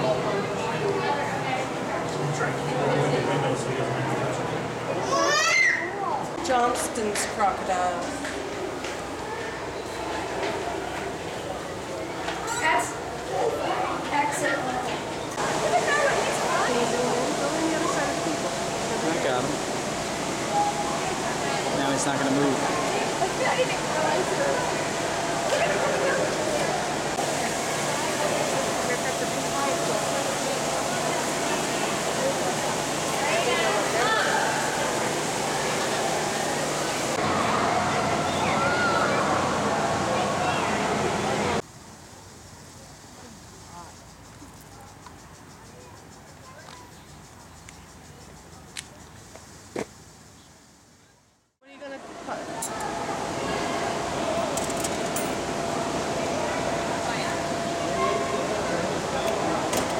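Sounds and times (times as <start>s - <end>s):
steady hum: 12.9s - 45.5s, 51.6s - 59.9s.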